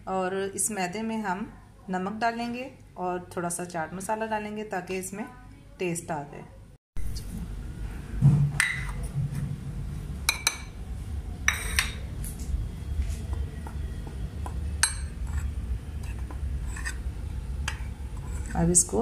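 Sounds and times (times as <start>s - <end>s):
steady low hum: 6.5s - 19.0s
metal spoon clinking on bowls: 10.3s - 10.8s, 11.5s - 12.0s, 14.4s - 17.0s.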